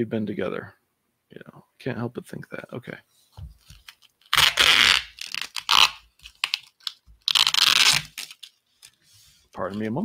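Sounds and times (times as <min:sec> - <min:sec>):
plastic wrapping crinkling and tearing: 0:03.6 - 0:09.0.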